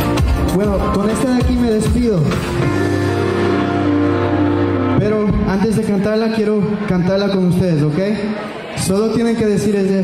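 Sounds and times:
sustained chord over speakers: 0:00.0 - 0:06.9.

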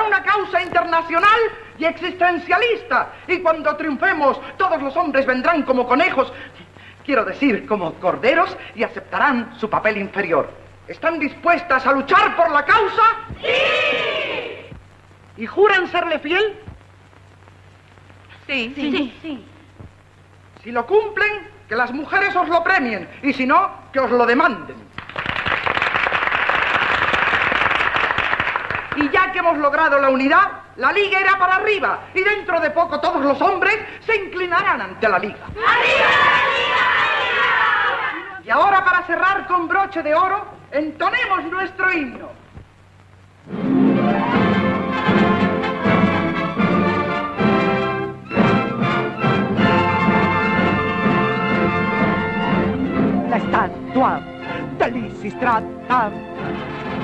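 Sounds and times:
person speaking: 0:18.3 - 0:19.9, 0:53.1 - 0:56.2
women applauding: 0:25.0 - 0:29.2
orchestra playing: 0:43.5 - 0:57.0.

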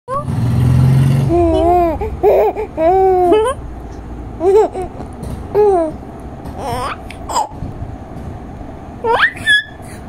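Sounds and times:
baby cooing: 0:01.3 - 0:03.6.

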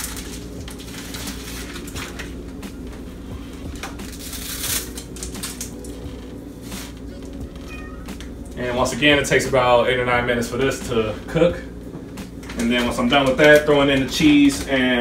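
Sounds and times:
dry spaghetti crackling: 0:00.0 - 0:08.9
steady low hum: 0:00.0 - 0:15.0
cat meow: 0:07.4 - 0:08.2.

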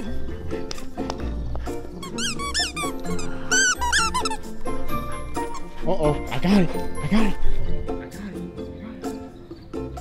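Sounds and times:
background music: 0:00.0 - 0:10.0
dog toy squeaking: 0:02.0 - 0:04.5, 0:05.3 - 0:05.7.

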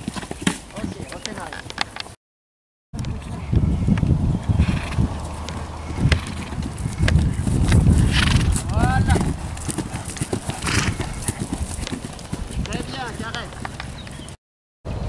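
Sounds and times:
horse hoofbeats on grass: 0:00.0 - 0:02.0, 0:04.6 - 0:14.4
horse whinny: 0:08.0 - 0:08.9, 0:10.3 - 0:11.6.

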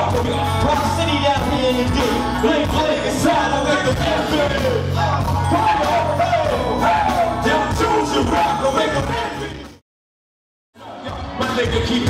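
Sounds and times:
person singing into microphone: 0:00.0 - 0:09.6
live band playing hip hop: 0:00.0 - 0:09.8, 0:10.8 - 0:12.0.

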